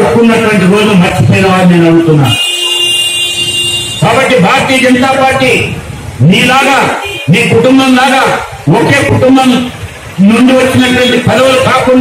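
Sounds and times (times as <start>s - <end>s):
man speaking: 0.0s - 2.4s, 4.0s - 12.0s
high-pitched horn-like tone: 2.2s - 4.2s.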